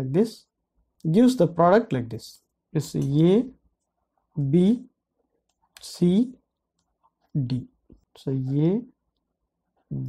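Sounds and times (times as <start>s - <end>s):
person speaking letters: 5.8s - 6.4s, 7.3s - 9.0s.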